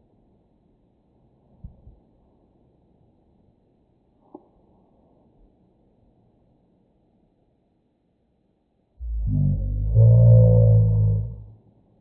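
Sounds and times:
slowed deep droning voice: 9.0s - 11.6s.

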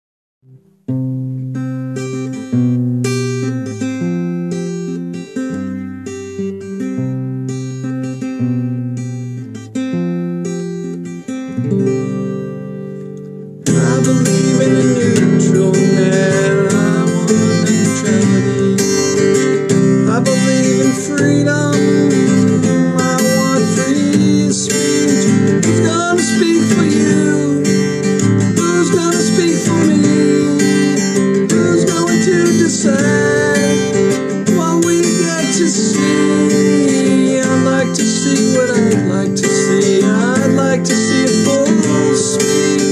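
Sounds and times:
acoustic guitar strumming: 0.4s - 42.9s
man singing: 13.6s - 42.9s.

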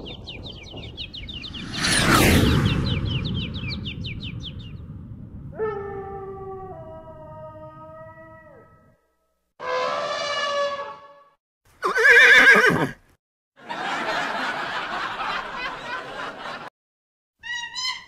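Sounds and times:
chirps: 0.0s - 4.9s.

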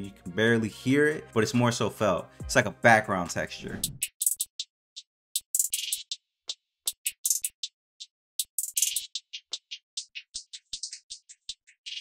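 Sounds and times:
hi-hat and percussion loop: 1.1s - 12.0s.

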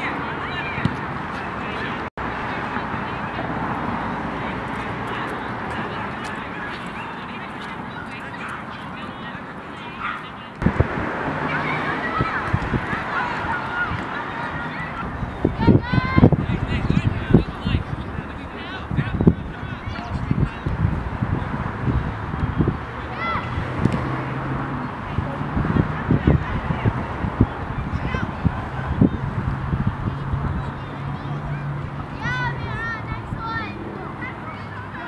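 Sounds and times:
busy outdoor background: 0.0s - 35.0s
distant players shouting: 0.0s - 35.0s
steady rushing noise: 10.6s - 35.0s.

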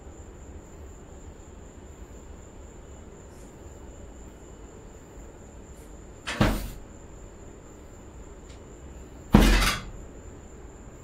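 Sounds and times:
loud heavy thump: 6.3s - 6.9s, 9.3s - 10.0s.

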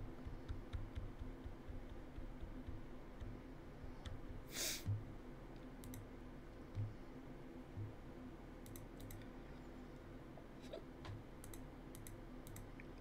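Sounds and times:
soft low thumps: 0.0s - 5.2s, 6.7s - 7.0s, 7.7s - 8.1s
low electrical hum: 0.0s - 13.0s.

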